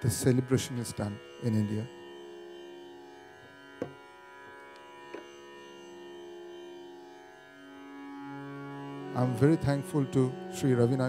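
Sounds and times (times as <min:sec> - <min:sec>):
harmonium chord: 0:00.0 - 0:11.0.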